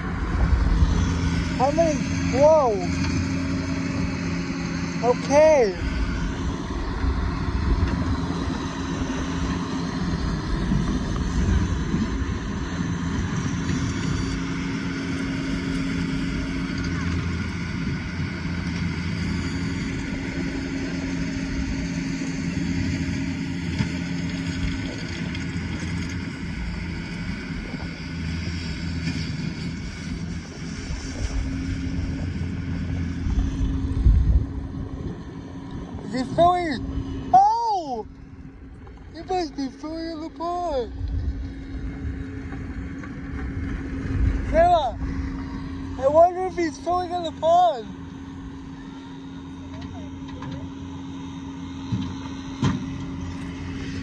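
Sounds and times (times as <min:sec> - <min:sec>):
engine-like hum: 0:00.0 - 0:54.0
low rumbling noise: 0:00.0 - 0:54.0.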